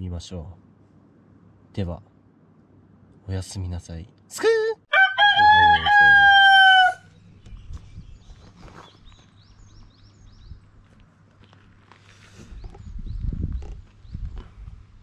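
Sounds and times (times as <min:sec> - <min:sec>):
rooster crowing: 0:04.9 - 0:07.1.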